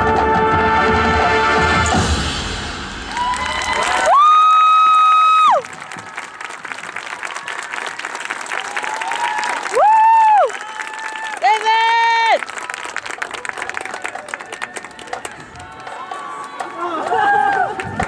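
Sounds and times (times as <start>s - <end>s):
marching band held chord: 0.0s - 3.0s
crowd applause and cheering: 1.0s - 18.0s
loud whooping cheers: 3.0s - 12.5s, 14.5s - 18.0s.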